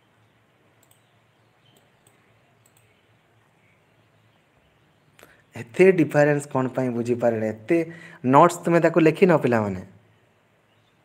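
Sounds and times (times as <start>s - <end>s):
faint steady hiss: 0.0s - 11.0s
small clicks: 0.7s - 3.1s.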